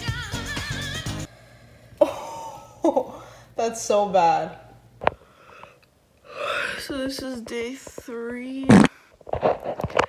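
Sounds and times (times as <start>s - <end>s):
pop music: 0.0s - 1.3s.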